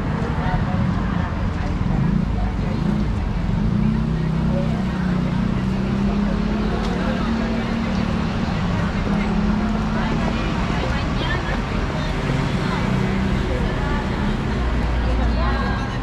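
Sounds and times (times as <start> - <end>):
passers-by talking: 0.0 - 16.0
traffic engine hum: 0.0 - 16.0.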